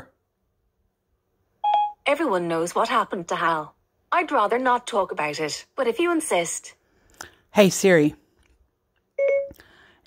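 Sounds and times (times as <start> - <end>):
short electronic beep: 1.6 - 2.0, 9.2 - 9.6.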